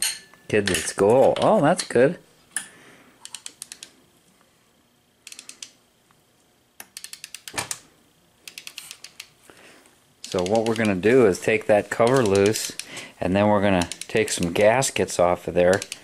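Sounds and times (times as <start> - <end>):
socket ratchet clicking: 3.2 - 3.9, 5.2 - 5.8, 6.8 - 7.8, 8.4 - 9.3, 10.2 - 11.0, 12.0 - 13.0, 13.7 - 14.5, 15.7 - 16.0.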